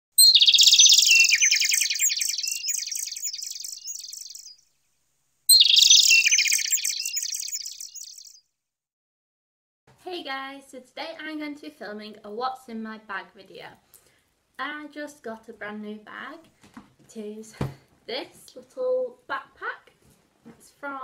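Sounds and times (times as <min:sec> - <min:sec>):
bird twittering trill: 0:00.2 - 0:04.6, 0:05.5 - 0:08.4.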